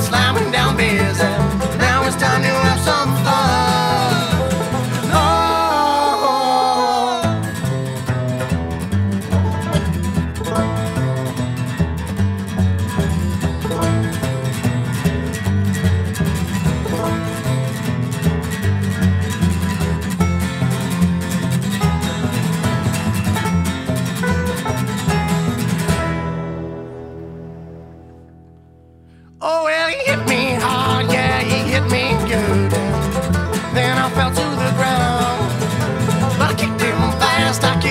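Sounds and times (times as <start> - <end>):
fast-picked banjo: 0.0 - 27.9, 29.9 - 37.9
low bass line: 0.0 - 29.1, 30.2 - 37.9
guitar: 0.0 - 37.9.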